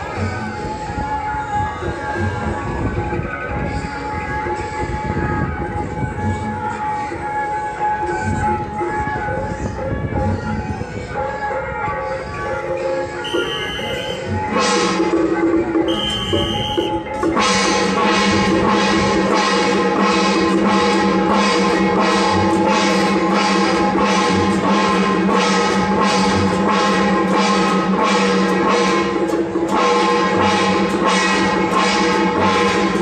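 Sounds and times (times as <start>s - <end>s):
crowd noise: 0.0s - 33.0s
procession band music: 13.2s - 15.1s, 15.8s - 33.0s
loud held brass chords: 15.9s - 33.0s.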